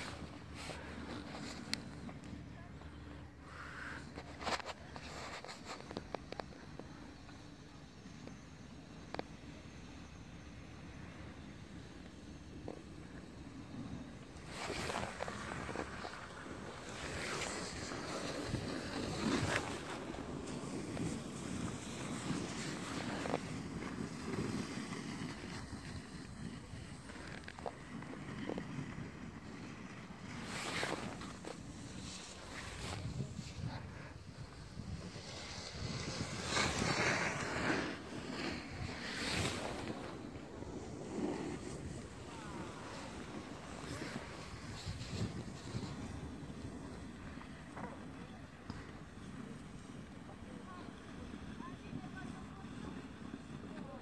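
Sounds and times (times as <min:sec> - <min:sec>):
snowboard scraping on snow: 0:00.0 - 0:02.2, 0:11.0 - 0:54.0
wind buffeting microphone: 0:32.6 - 0:47.7.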